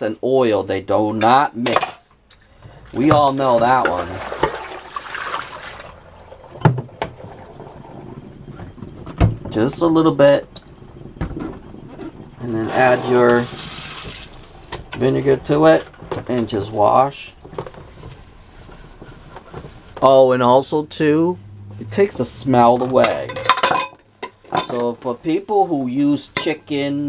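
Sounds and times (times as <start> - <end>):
faint sloshing water: 2.4 - 14.6
sponge scrubbing metal pot: 12.5 - 13.8.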